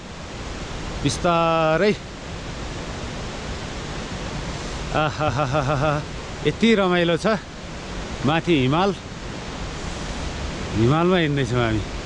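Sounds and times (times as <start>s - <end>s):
wind and rough road noise: 0.0s - 12.0s.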